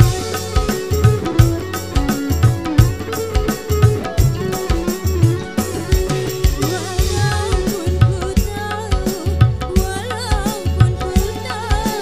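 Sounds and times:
band playing instrumental: 0:00.0 - 0:12.0.

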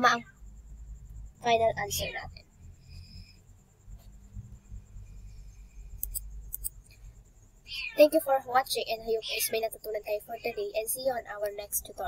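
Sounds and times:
low steady hum: 0:00.0 - 0:12.0
computer mouse clicks: 0:06.0 - 0:07.0.

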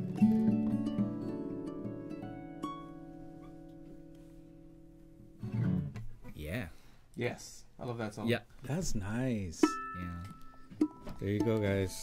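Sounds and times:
guitar and ukulele chord ringing: 0:00.0 - 0:05.9, 0:09.6 - 0:12.0.

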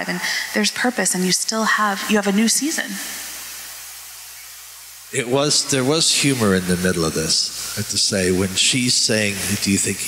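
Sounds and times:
low hum: 0:00.0 - 0:10.0
microphone hiss: 0:00.0 - 0:10.0.

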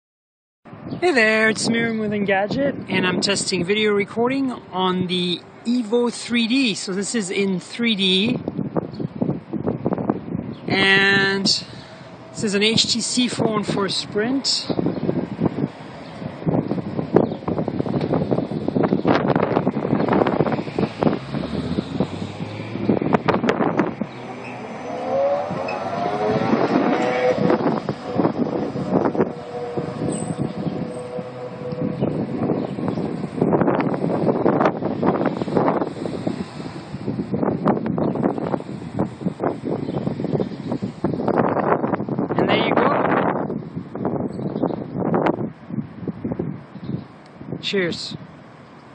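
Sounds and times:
street traffic: 0:00.6 - 0:48.9
wind buffeting microphone: 0:00.7 - 0:48.9
bus motor whine: 0:14.9 - 0:42.0.

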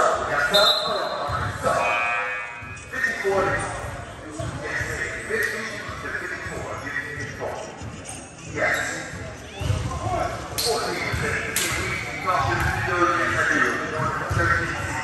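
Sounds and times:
voices echoing in gym: 0:00.0 - 0:15.0.

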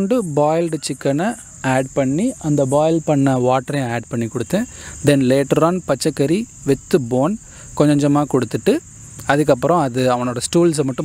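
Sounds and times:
crickets chirring: 0:00.0 - 0:11.0
man talking: 0:00.0 - 0:11.0.

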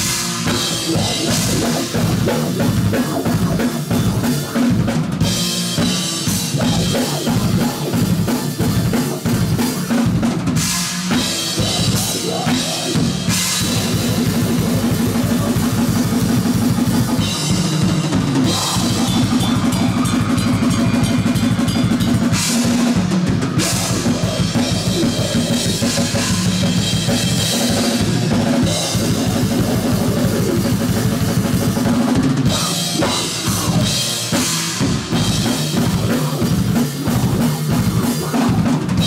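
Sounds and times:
death metal band playing: 0:00.0 - 0:39.0
distorted electric guitars: 0:00.0 - 0:39.0
fast bass drum strokes: 0:00.0 - 0:39.0
harsh screamed vocal: 0:00.4 - 0:10.1, 0:11.1 - 0:39.0.

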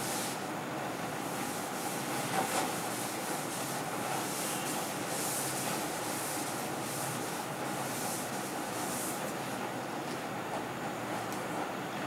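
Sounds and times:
duster wiping chalkboard: 0:01.2 - 0:09.5.

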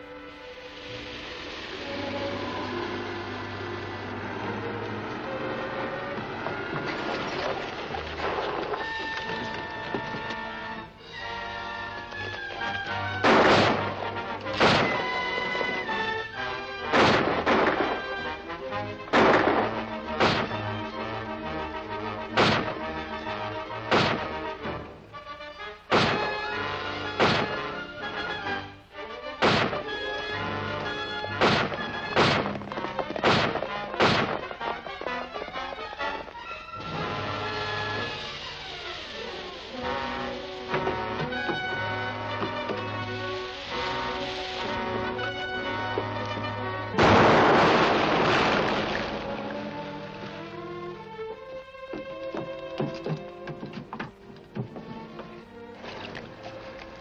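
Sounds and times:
dramatic orchestral music: 0:00.0 - 0:57.0
sharp loud cracks: 0:12.9 - 0:18.4, 0:19.0 - 0:21.1, 0:22.2 - 0:23.2, 0:23.8 - 0:24.6, 0:25.9 - 0:27.9, 0:29.4 - 0:30.1, 0:30.7 - 0:35.0, 0:46.9 - 0:50.3.

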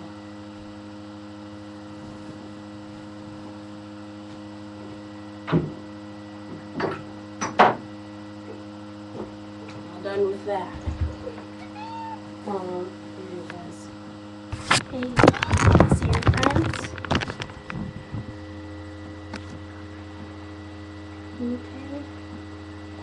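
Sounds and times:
electrical hum: 0:00.0 - 0:23.0.

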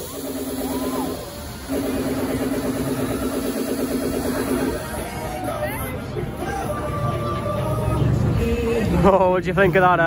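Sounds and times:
ride machinery humming: 0:00.0 - 0:10.0.

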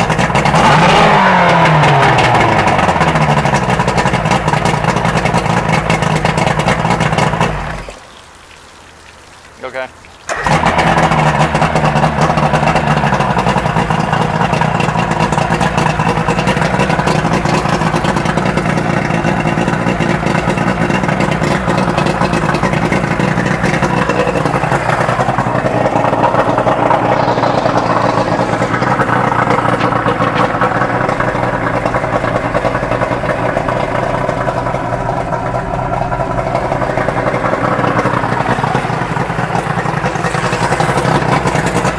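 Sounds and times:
outboard motor idling: 0:00.0 - 0:08.4, 0:09.8 - 0:41.9.

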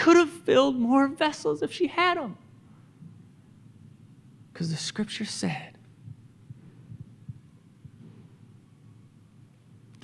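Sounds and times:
low hum: 0:05.8 - 0:10.0
faint low thuds: 0:06.0 - 0:08.9.

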